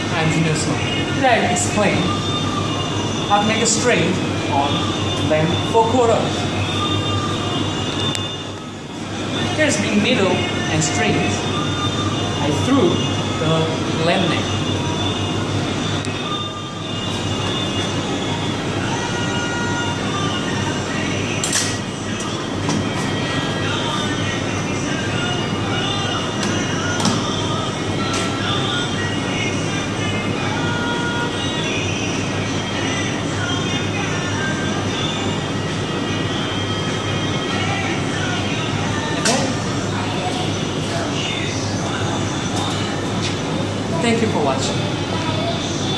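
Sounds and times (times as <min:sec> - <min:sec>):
mechanical hum and hiss: 0:00.0 - 0:45.9.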